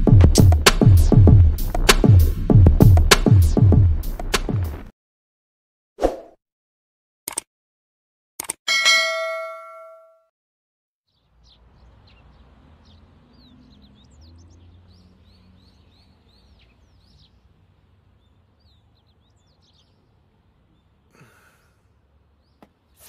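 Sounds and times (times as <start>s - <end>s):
bell-like notification chime: 8.7s - 10.2s
birds chirping: 11.1s - 23.0s.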